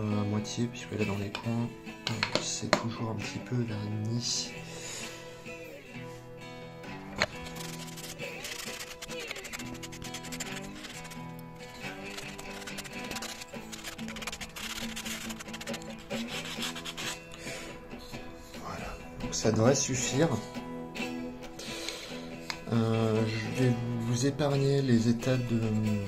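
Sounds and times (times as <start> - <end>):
acoustic guitar music: 0.0 - 26.0
sandpaper rubbing on wood: 7.2 - 17.3.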